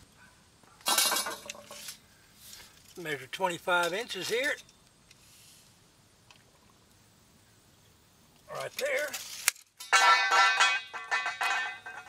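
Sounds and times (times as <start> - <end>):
metal tubing clinking on concrete: 0.8 - 2.0, 3.8 - 4.8, 8.6 - 12.0.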